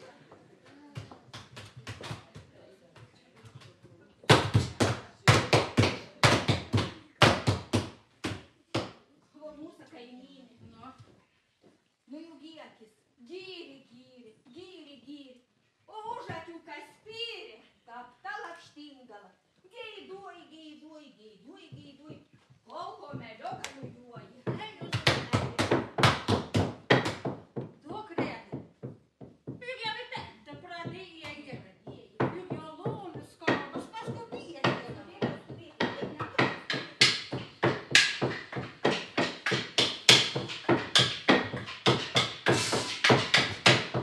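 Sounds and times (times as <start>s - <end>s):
wooden beaters whacking linen: 30.8s - 44.0s.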